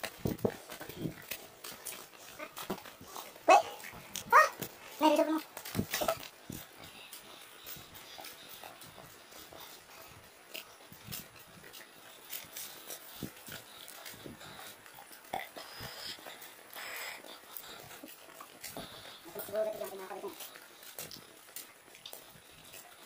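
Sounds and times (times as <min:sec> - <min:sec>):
footsteps on dirt trail: 0:00.0 - 0:23.0.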